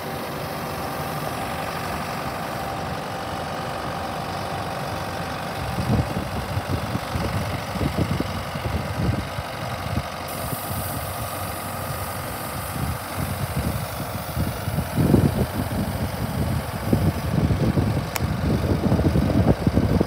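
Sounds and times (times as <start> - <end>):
crop sprayer diesel engine running: 0.0 - 20.0.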